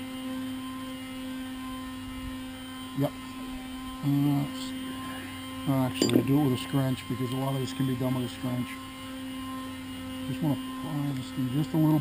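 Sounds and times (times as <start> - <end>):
steady low hum: 0.4 - 12.0
person saying uh: 6.0 - 6.4.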